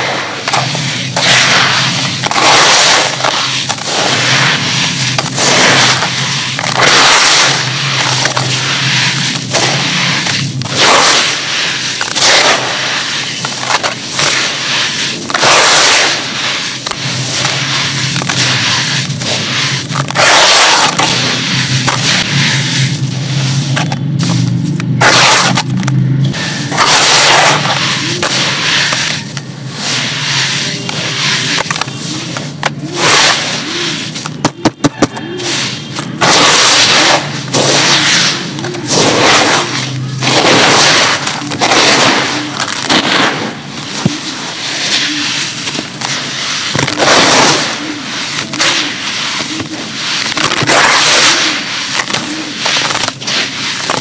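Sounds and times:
hands crunching dry sand: 0.0s - 54.0s.

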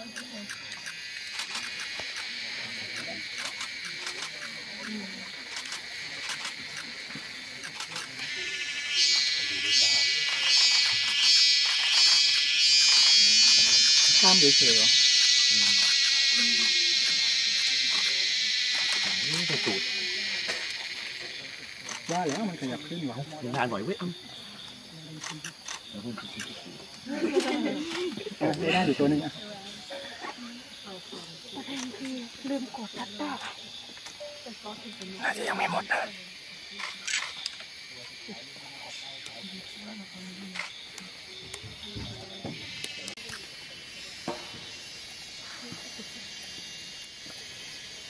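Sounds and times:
quiet conversation: 0.0s - 47.4s
pulsing insect buzz: 0.0s - 48.0s.

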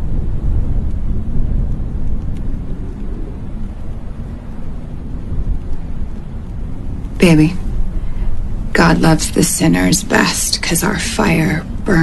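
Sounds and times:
deep rumble: 0.0s - 12.0s.

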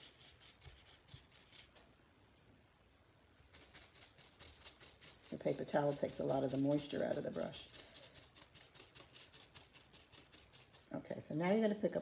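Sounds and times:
brush swishing on paper towel: 3.5s - 11.0s.

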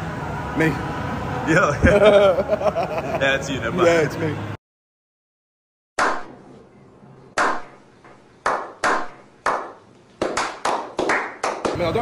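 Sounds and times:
hand claps with echo: 8.4s - 12.0s.

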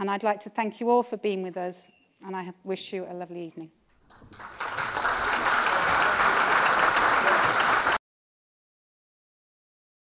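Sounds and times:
audience applauding: 4.0s - 8.0s.

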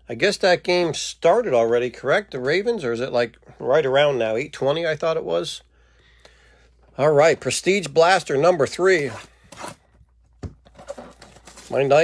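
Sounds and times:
faint rustling of packs: 8.8s - 12.0s
cardboard scraping: 10.6s - 12.0s.

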